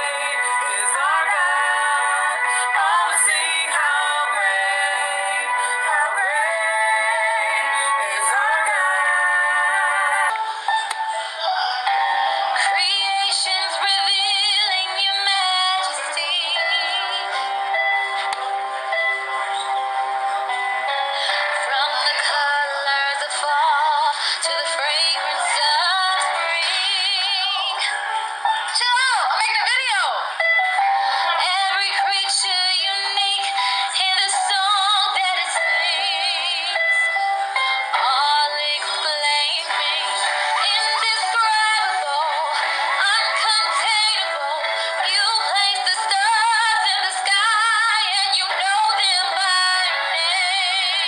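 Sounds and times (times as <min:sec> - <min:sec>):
woman singing with vibrato: 0:00.0 - 0:10.7, 0:12.4 - 0:17.6, 0:21.2 - 0:51.0.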